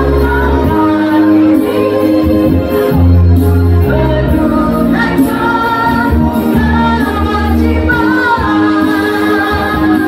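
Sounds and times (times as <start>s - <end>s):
choir of women singing: 0.0s - 10.0s
low bass accompaniment: 0.0s - 10.0s.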